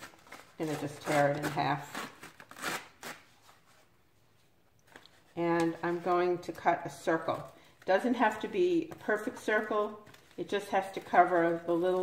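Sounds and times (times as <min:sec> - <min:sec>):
paper tearing: 0:00.0 - 0:03.6.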